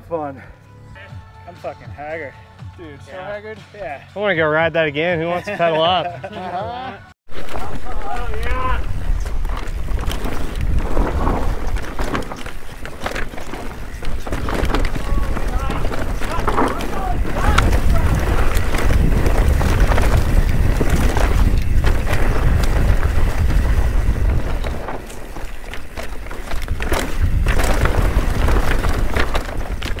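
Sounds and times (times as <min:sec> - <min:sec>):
bike clicks and rattles: 0:07.3 - 0:30.0
tyres running over dirt: 0:07.3 - 0:30.0
wind buffeting microphone: 0:07.6 - 0:30.0.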